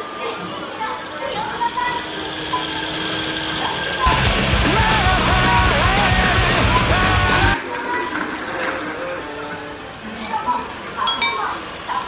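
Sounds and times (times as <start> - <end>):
small electric motor whirring: 1.4 - 4.1
rock music with heavy beat: 4.1 - 7.6.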